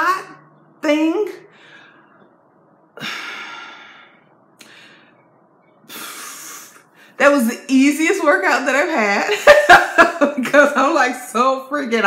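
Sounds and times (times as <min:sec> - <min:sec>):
woman speaking: 0:00.0 - 0:01.5, 0:07.2 - 0:12.0
woman breathing: 0:01.5 - 0:02.3, 0:03.0 - 0:07.2.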